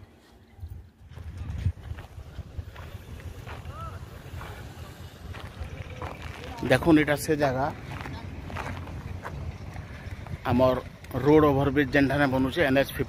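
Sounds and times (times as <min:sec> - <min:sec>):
wind buffeting microphone: 0:00.6 - 0:13.0.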